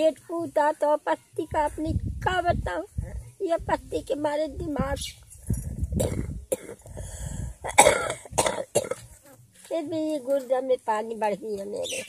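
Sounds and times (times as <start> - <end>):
elderly woman coughing: 6.0 - 6.8, 7.6 - 9.1.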